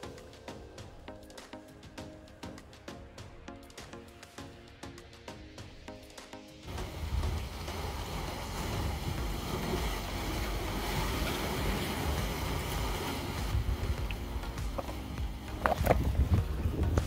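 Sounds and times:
background music: 0:00.0 - 0:17.0
sea waves against rocks: 0:06.7 - 0:17.0
wind on microphone: 0:13.4 - 0:17.0.

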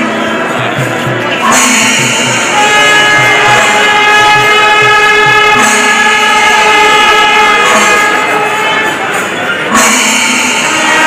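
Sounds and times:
faint drum beats: 0:00.0 - 0:11.0
horn blowing long note: 0:02.3 - 0:11.0.

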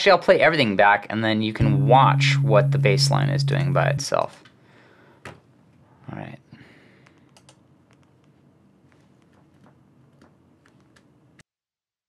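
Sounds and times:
computer mouse and keyboard clicks: 0:07.0 - 0:08.1.

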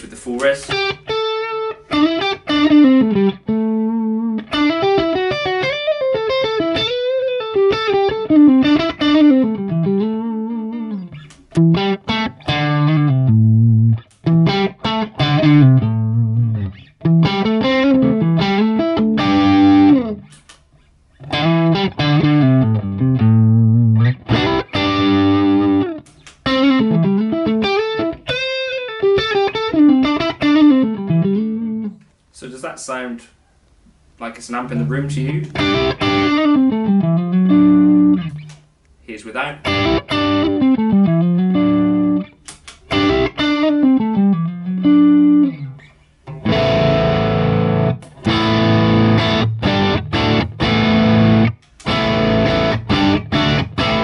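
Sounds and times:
electric guitar: 0:00.6 - 0:20.6, 0:21.2 - 0:32.0, 0:34.7 - 0:38.7, 0:39.6 - 0:54.0.

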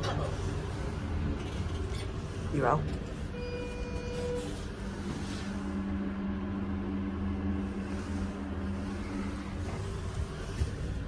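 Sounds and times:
elevator hum: 0:00.0 - 0:11.0.

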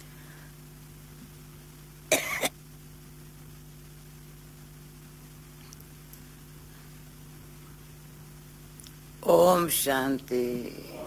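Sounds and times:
faint steady hum: 0:00.0 - 0:11.0
woman coughing: 0:02.1 - 0:02.6.

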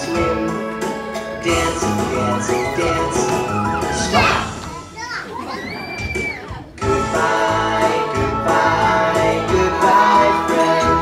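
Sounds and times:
recorded music: 0:00.0 - 0:05.2, 0:06.4 - 0:11.0
children calling and chattering: 0:02.4 - 0:06.8.

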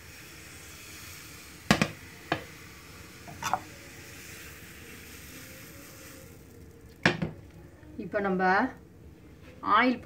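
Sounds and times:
batter sizzling on hot pan: 0:00.0 - 0:08.7.

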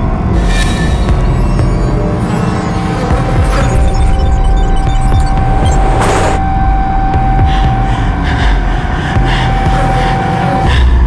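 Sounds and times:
low rumbling drone: 0:00.0 - 0:11.0.

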